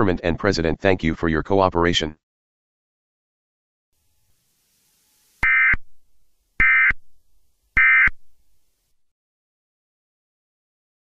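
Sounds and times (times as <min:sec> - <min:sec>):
short electronic data bursts: 0:04.8 - 0:06.0, 0:06.6 - 0:07.2, 0:07.8 - 0:08.3.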